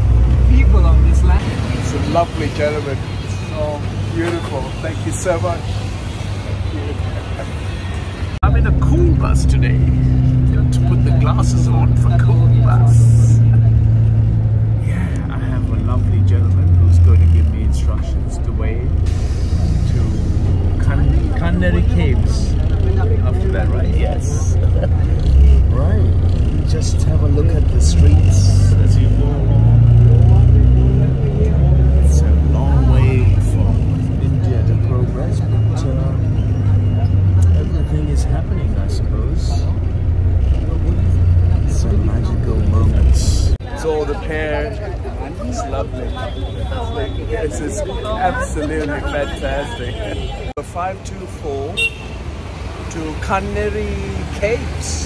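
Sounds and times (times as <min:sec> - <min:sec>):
bus engine humming: 0:00.0 - 0:55.0
voices talking: 0:00.0 - 0:55.0.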